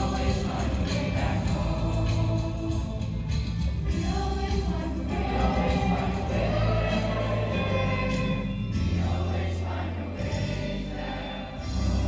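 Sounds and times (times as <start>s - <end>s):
choir singing sustained notes: 0.0s - 3.2s, 3.9s - 12.0s
music with deep bass line: 0.0s - 12.0s.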